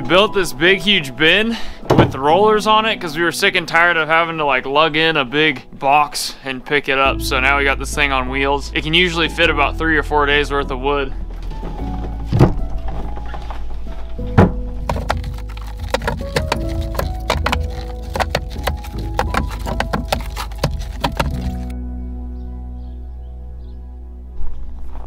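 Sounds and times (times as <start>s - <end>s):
background music: 0.0s - 25.0s
firewood knocking into wooden bin: 14.3s - 21.7s.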